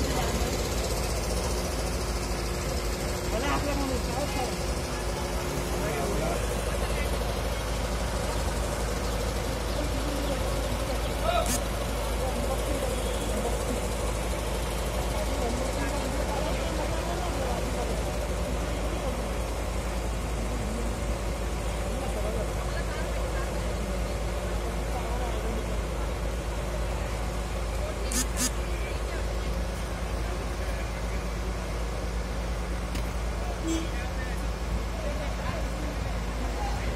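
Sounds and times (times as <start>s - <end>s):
crane diesel engine running: 0.0s - 36.9s.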